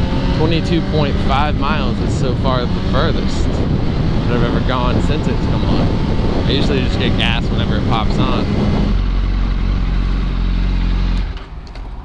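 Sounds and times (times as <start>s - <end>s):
motorcycle engine at low revs: 0.0s - 12.0s.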